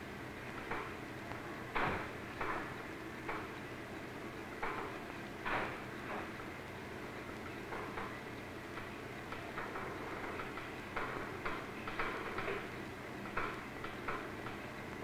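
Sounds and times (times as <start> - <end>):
low hum and hiss: 0.0 - 15.0
faint irregular ticks and clicks: 0.4 - 15.0.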